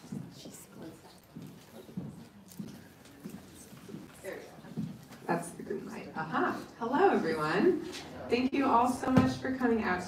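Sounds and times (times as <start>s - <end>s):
faint murmured voices: 0.0s - 6.8s.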